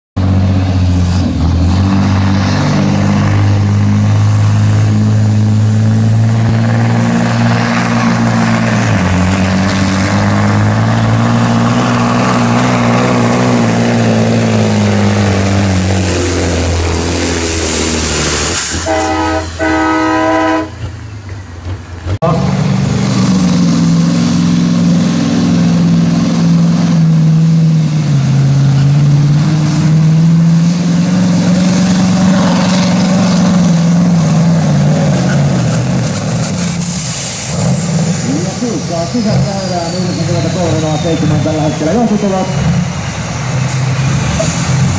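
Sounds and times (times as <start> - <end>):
diesel truck engines under load: 0.2 - 44.9
horn blast: 18.4 - 20.9.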